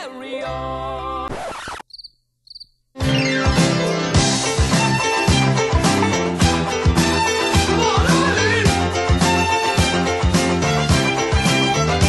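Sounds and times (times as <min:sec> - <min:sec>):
music: 0:00.0 - 0:01.4, 0:03.0 - 0:12.0
cricket chirps: 0:01.9 - 0:02.8.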